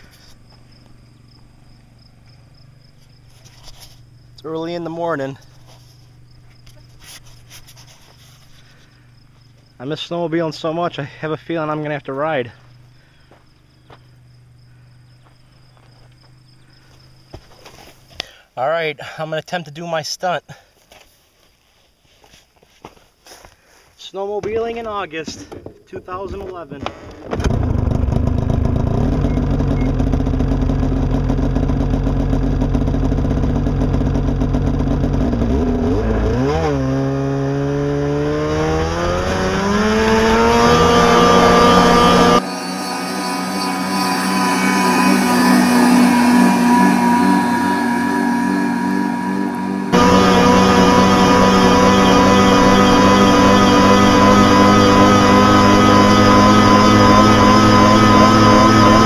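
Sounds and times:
snowmobile engine revving: 25.2 - 59.0.

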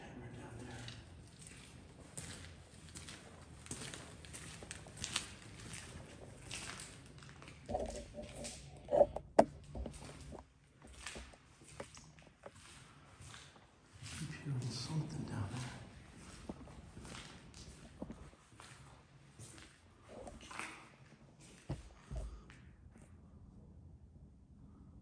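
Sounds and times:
footsteps on debris-strewn concrete: 0.8 - 20.4.

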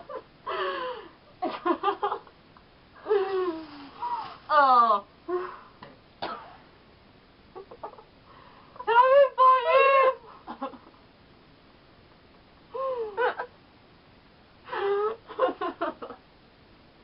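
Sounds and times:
women laughing hard: 0.0 - 2.3, 12.8 - 13.5, 14.7 - 16.2.

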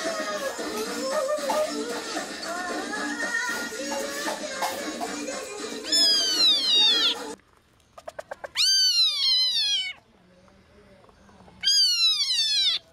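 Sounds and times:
background music: 0.0 - 7.4
civet high-pitched calls: 5.9 - 7.4, 8.0 - 10.0, 11.6 - 12.9
quick ticks: 7.8 - 8.6.

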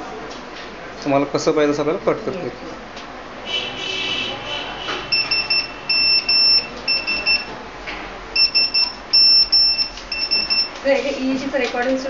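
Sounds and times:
electronic alarm beeping: 5.1 - 7.5, 8.4 - 10.8.

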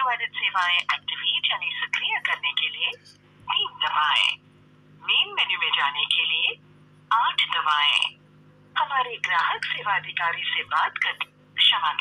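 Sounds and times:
automated phone menu voice: 0.0 - 4.4, 5.0 - 8.2, 8.8 - 12.0.

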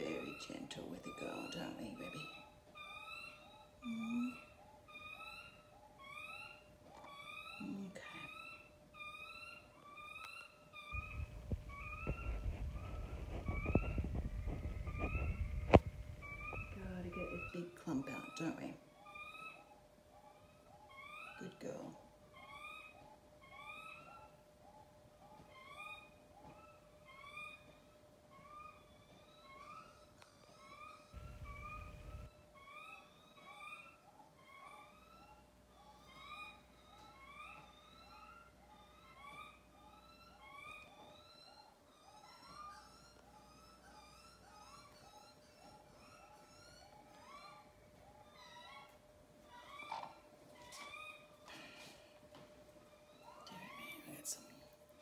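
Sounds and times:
hen whining calls: 0.0 - 52.1, 52.9 - 54.6.

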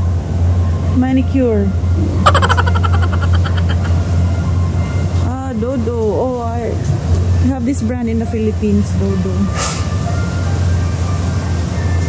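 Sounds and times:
steady low hum: 0.0 - 9.4
people talking: 0.9 - 3.9, 5.2 - 9.6.

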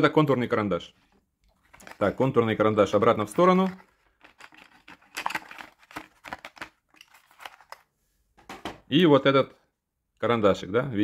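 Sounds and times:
pencils clicking and tapping: 3.1 - 7.8.

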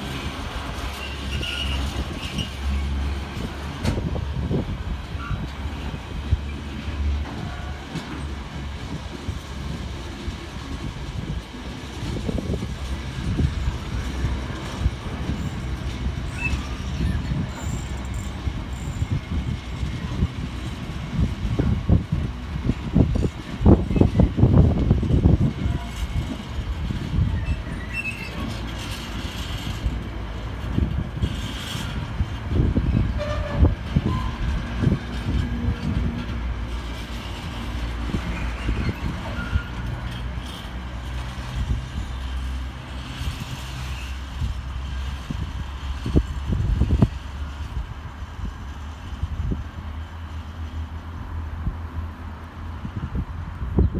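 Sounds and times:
wheels clattering on rails: 0.0 - 51.3
freight train rumbling past: 0.0 - 53.9.

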